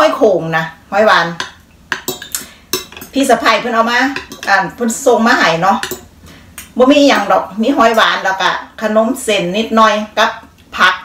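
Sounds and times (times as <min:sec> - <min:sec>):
fork clinking against bowl: 0:01.4 - 0:03.2, 0:04.1 - 0:04.6, 0:05.8 - 0:06.1.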